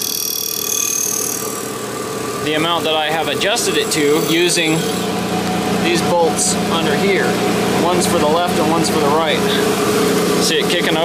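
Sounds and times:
grinding wheel grinding steel: 0.0 - 6.0
machine hum: 0.0 - 11.0.

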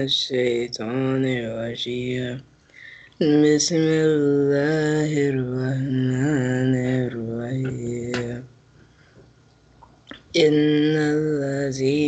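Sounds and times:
man chanting a recitation: 0.0 - 2.5, 3.2 - 8.5, 10.3 - 12.0.

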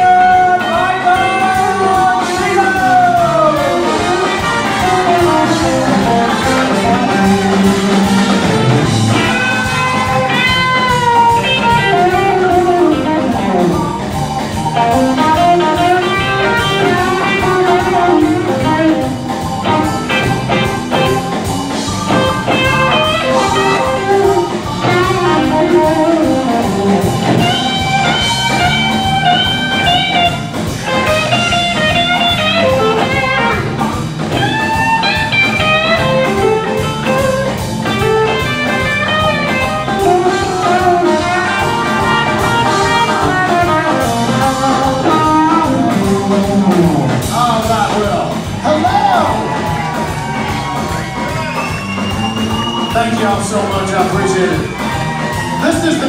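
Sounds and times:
bass: 0.0 - 56.0
drum kit: 0.0 - 56.0
electric guitar lead: 0.0 - 56.0
keyboard: 0.0 - 56.0.

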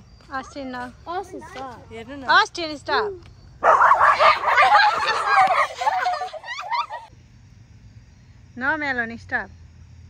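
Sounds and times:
children's voices: 0.4 - 2.3, 3.8 - 7.1
dog barking and yipping: 3.6 - 6.9.

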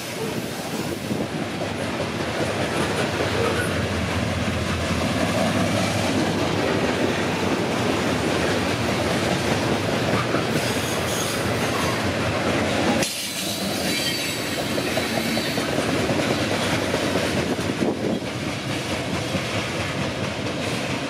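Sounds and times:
train wheels rumbling on rails: 0.0 - 21.0
high wheel squeal: 10.5 - 12.0, 13.2 - 15.7.

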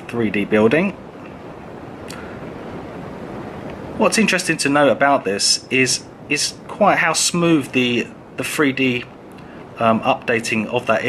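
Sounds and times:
soft room hiss: 0.0 - 11.0.

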